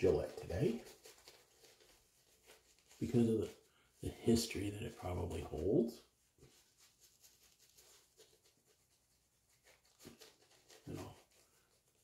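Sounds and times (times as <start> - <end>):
shaving brush swishing lather: 0.0 - 12.0.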